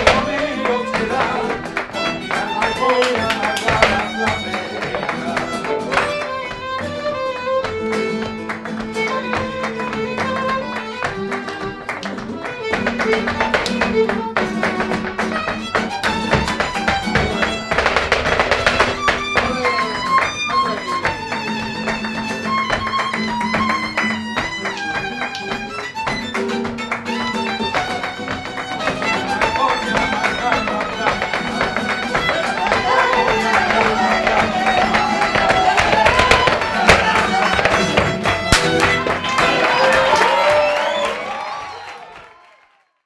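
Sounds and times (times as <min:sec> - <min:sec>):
violin melody: 0:00.0 - 0:40.0
rhythmic hand-clapping: 0:00.0 - 0:42.6
heeled shoes striking floor: 0:12.2 - 0:20.2, 0:22.7 - 0:39.6
loud sharp strike: 0:38.5 - 0:39.1.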